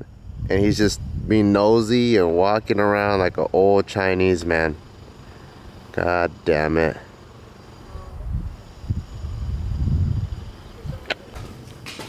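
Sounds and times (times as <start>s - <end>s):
wind buffeting microphone: 0.0s - 3.7s, 7.9s - 11.2s.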